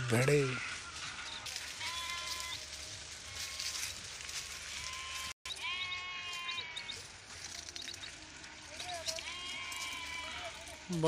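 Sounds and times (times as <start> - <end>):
sheep bleating: 0.0 - 7.0, 8.6 - 11.0.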